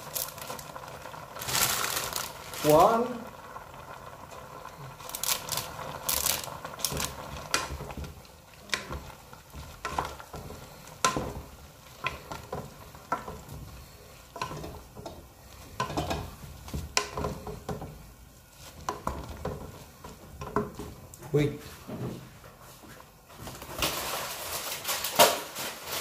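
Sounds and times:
noodles sizzling in a pan: 0:00.0 - 0:21.5, 0:23.3 - 0:26.0
wooden spatula scraping metal pan: 0:08.7 - 0:21.6.

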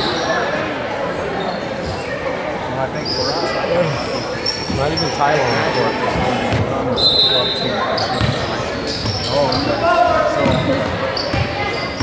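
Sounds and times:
people chattering in a gymnasium: 0:00.0 - 0:12.0.

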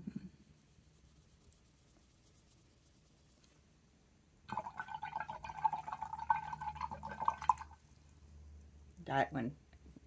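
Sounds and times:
paintbrush scratching on card: 0:00.2 - 0:03.6
water running: 0:04.5 - 0:07.9.

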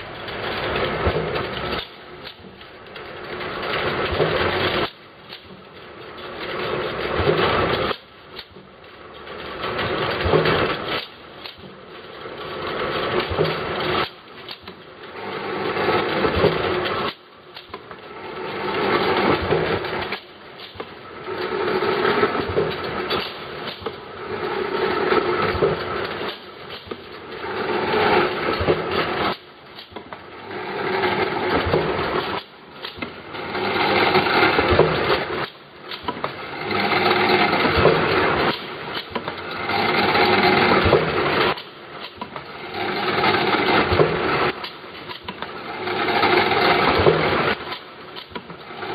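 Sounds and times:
filling machine running: 0:00.0 - 0:48.9.

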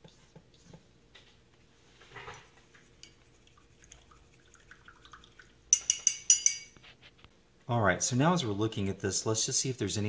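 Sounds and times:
paintbrush clinking on palette: 0:05.7 - 0:06.8.

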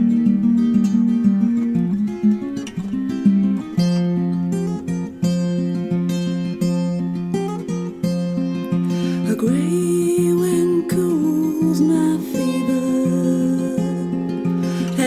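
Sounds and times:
acoustic guitar picking: 0:00.0 - 0:15.0.

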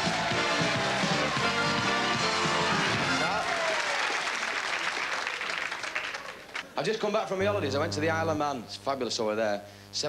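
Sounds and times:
audience applauding: 0:00.0 - 0:06.7.

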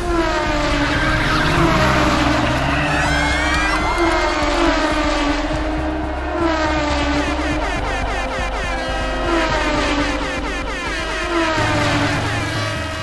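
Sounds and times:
race car engines revving: 0:00.0 - 0:13.0.

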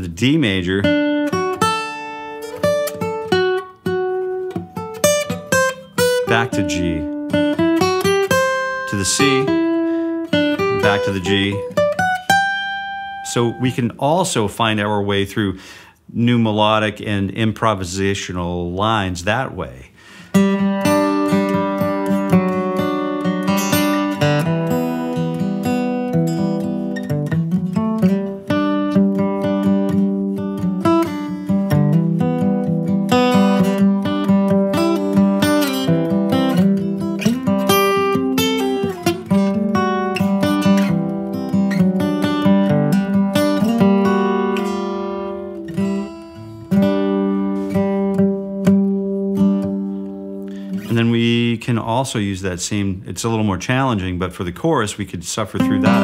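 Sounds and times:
acoustic guitar played with a pick: 0:00.2 - 0:14.2, 0:20.2 - 0:51.5, 0:55.6 - 0:56.0.

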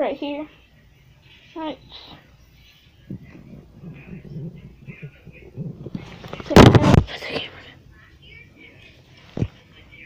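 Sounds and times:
handling noise on microphone: 0:03.1 - 0:07.5.

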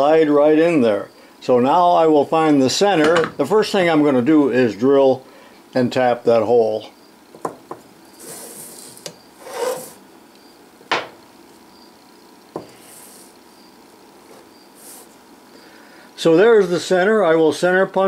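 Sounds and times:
scraping rubs on bench: 0:08.1 - 0:10.0, 0:12.6 - 0:13.4, 0:14.2 - 0:15.2
scriber scratching metal: 0:08.1 - 0:10.0.

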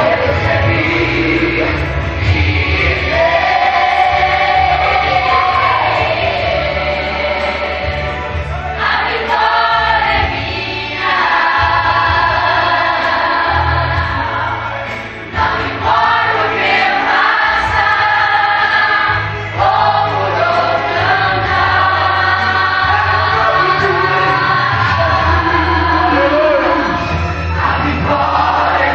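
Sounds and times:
instrumental backing: 0:00.0 - 0:28.9
voices singing along: 0:00.0 - 0:28.9.

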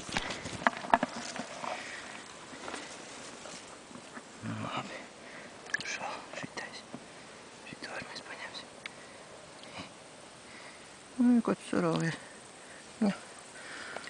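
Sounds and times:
small clicks and rustles: 0:00.0 - 0:04.3
person whispering: 0:04.4 - 0:05.1, 0:05.7 - 0:06.9, 0:07.6 - 0:08.7.

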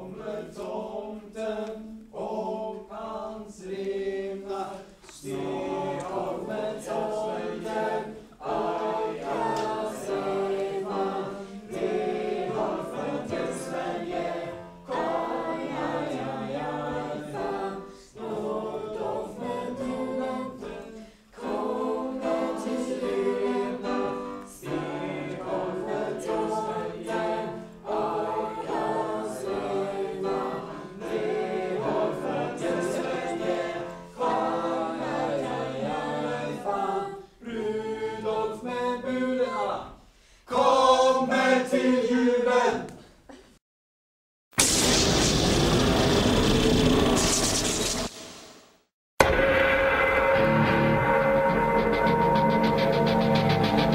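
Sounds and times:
group singing a christmas song: 0:00.0 - 0:43.3, 0:50.4 - 0:53.9.

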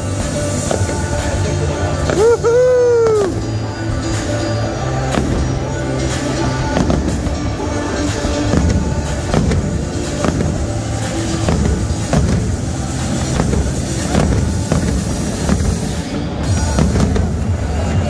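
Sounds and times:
fireworks bursting: 0:00.0 - 0:18.0
music playing: 0:00.0 - 0:18.0.

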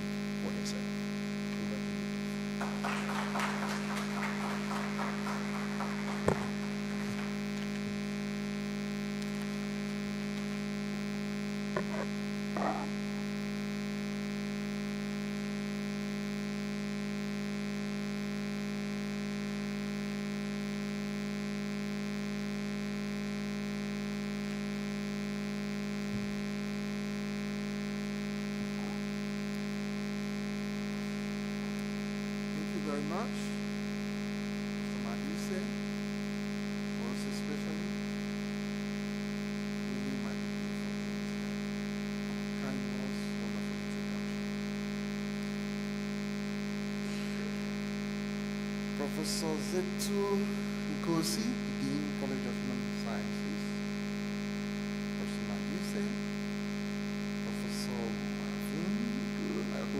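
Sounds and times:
steady electrical hum: 0:00.0 - 0:59.9.

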